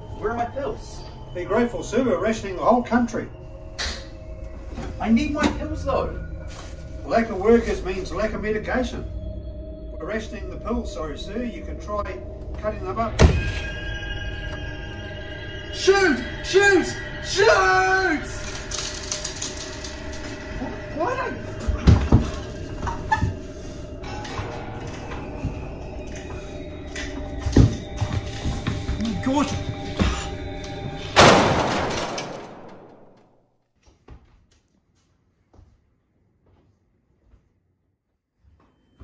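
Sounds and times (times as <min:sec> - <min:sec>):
tense film score: 0:00.0 - 0:33.4.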